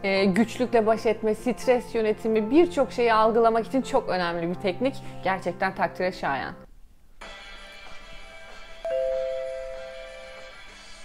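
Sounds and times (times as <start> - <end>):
background music: 0.0 - 11.0
two-tone notification bell ding: 8.9 - 10.4.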